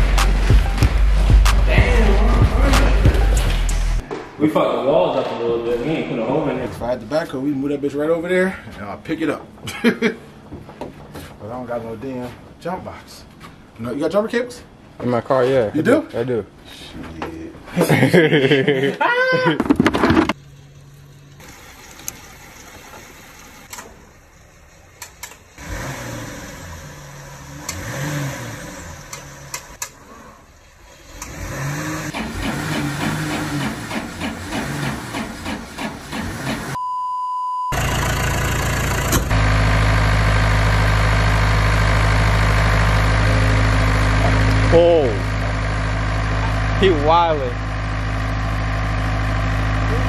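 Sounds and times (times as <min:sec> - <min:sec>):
short beep: 0:36.8 - 0:37.8
diesel engine idling: 0:37.7 - 0:50.0.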